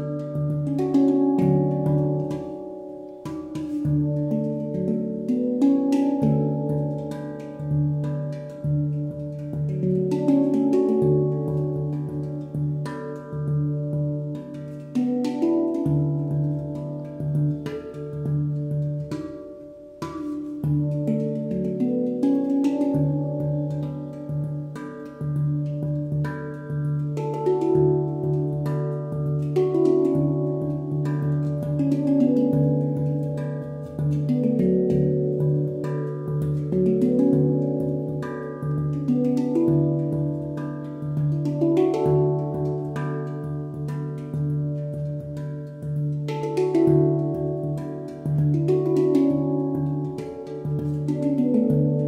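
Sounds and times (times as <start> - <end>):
handpan played with hands: 0.0 - 52.0.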